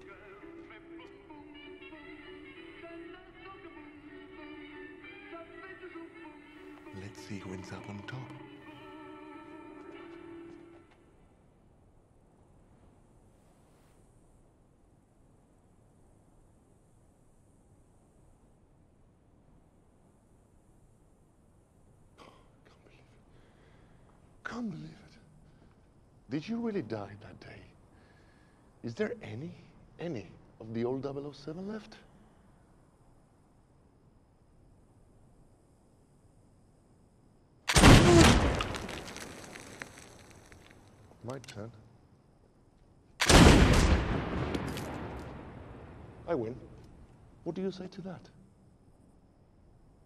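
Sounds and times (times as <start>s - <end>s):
faint whisper or breath: 22.2s - 24.2s, 27.9s - 28.8s
pistol shot with echo: 37.7s - 39.0s, 43.2s - 45.3s.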